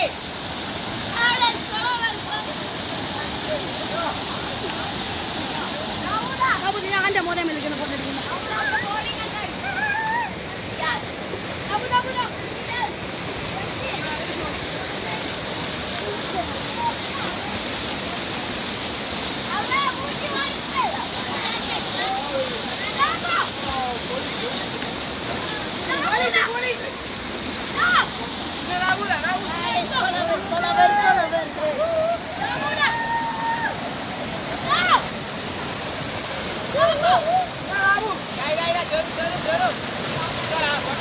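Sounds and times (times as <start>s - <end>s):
fast-flowing stream rushing: 0.0s - 41.0s
water splashing: 0.0s - 41.0s
boys shouting: 8.4s - 11.1s, 27.7s - 33.9s, 34.5s - 35.2s, 36.6s - 38.2s
people shouting: 29.7s - 33.8s, 36.7s - 38.1s.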